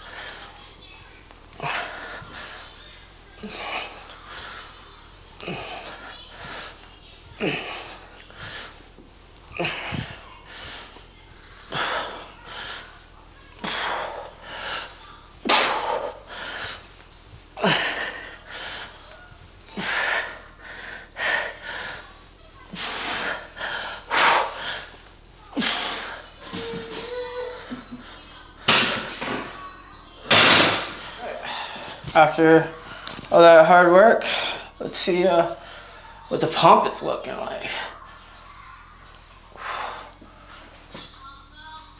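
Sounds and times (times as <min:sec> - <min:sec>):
hard breathing: 0:00.0 - 0:17.0, 0:17.6 - 0:29.4, 0:30.3 - 0:36.3, 0:37.6 - 0:41.0.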